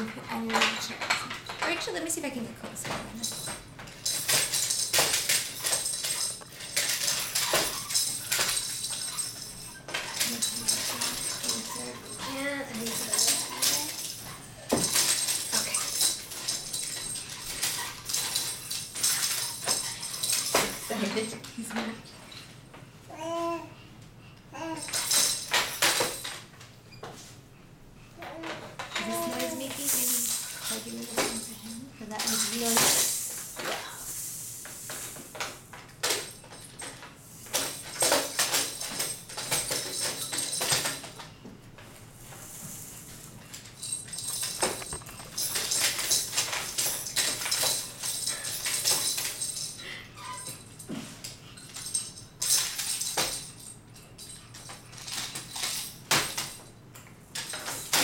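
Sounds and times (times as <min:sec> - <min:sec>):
plastic toy rattling on a tray: 0:00.0 - 0:22.0, 0:28.3 - 0:34.0, 0:43.6 - 0:49.8
baby vocal sounds: 0:23.1 - 0:23.8, 0:28.2 - 0:30.2.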